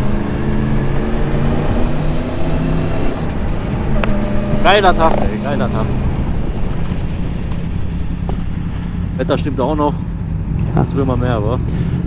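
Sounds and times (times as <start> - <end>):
motorcycle engine running: 0.0 - 12.0
wind and road noise: 0.0 - 12.0.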